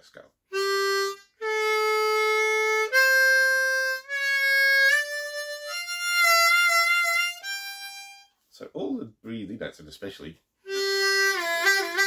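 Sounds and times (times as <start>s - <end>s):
harmonica blues scale: 0.5s - 8.4s, 10.6s - 12.0s.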